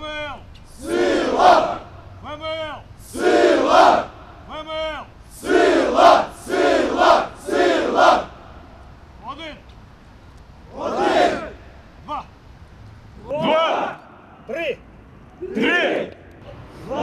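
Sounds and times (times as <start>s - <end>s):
man calling out: 0.0s - 0.5s, 2.2s - 3.0s, 4.4s - 5.2s, 12.0s - 12.4s, 14.5s - 14.8s
group shouting in unison: 15.4s - 16.1s.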